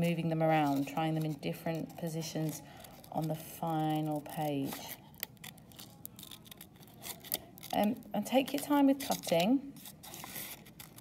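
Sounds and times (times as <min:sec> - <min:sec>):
scissors cutting paper: 0:00.1 - 0:11.0.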